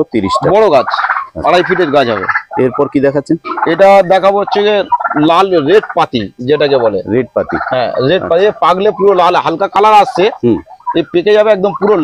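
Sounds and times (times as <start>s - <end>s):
person talking: 0.0s - 12.0s.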